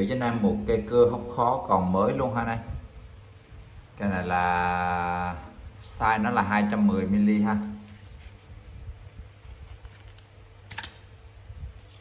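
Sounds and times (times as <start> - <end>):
plastic sleeve crinkling: 7.5 - 11.0, 11.7 - 12.0.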